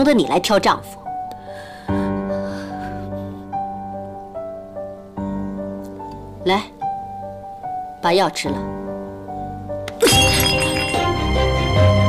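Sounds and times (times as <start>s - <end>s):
background music: 0.0s - 12.0s
bowl smashing: 10.0s - 11.3s.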